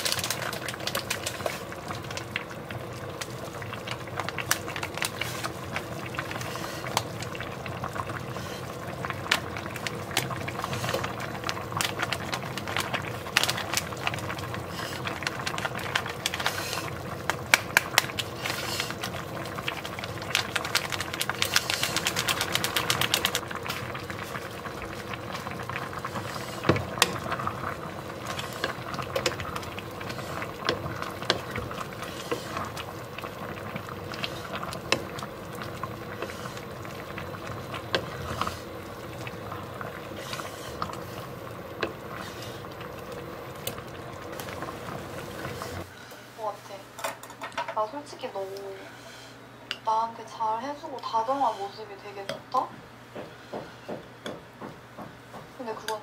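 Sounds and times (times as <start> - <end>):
fine crackling: 0.0 - 46.8
pot simmering with bubbling: 0.0 - 56.0
spatula knocking against pot: 53.1 - 56.0.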